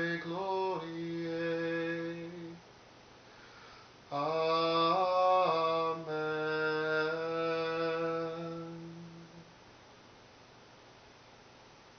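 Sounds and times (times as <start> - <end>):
man singing chant unaccompanied: 0.0 - 2.6, 4.1 - 9.6.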